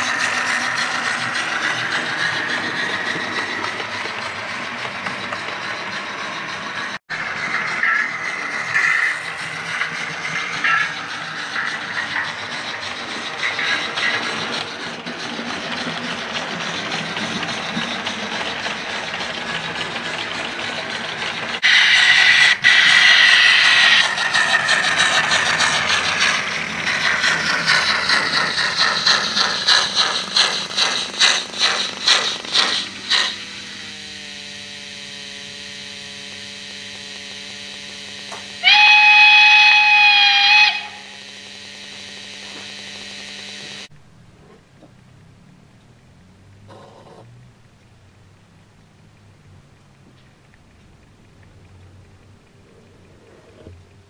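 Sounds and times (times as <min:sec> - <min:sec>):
locomotive exhaust beats: 0:00.0 - 0:54.0
steam hissing: 0:17.4 - 0:43.9
steam whistle blowing: 0:34.8 - 0:43.9
steady low hum: 0:40.6 - 0:54.0.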